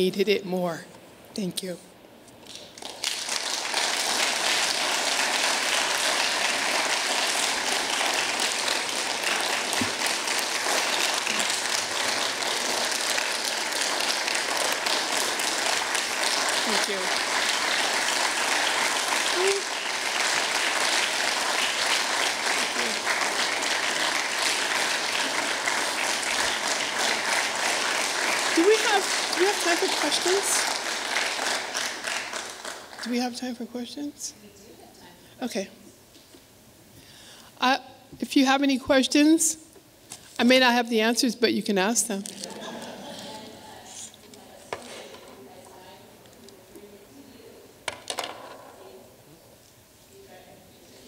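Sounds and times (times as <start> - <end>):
audience applauding: 2.4 - 33.2.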